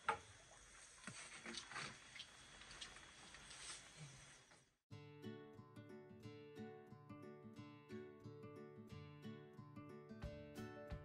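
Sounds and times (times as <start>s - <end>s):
acoustic guitar music: 4.9s - 11.0s.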